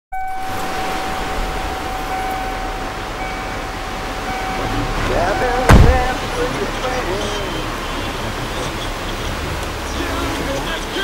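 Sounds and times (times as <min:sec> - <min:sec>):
steady high whine: 0:00.2 - 0:06.9
static-like hiss: 0:00.2 - 0:11.0
loud sharp thump: 0:05.7 - 0:06.1.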